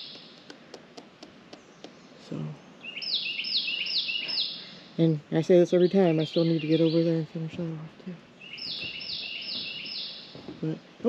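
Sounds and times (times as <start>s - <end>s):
faint irregular clicks: 0.0s - 2.0s.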